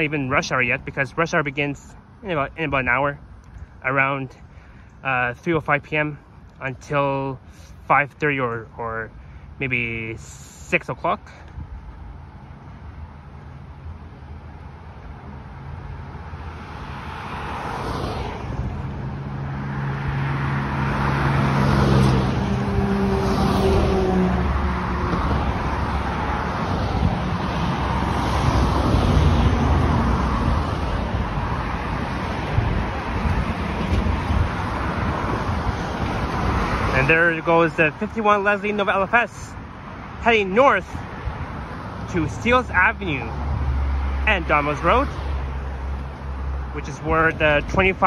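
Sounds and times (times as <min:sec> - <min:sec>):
heavy vehicle engine hum: 0:00.0 - 0:48.0
road traffic passing: 0:00.0 - 0:48.0.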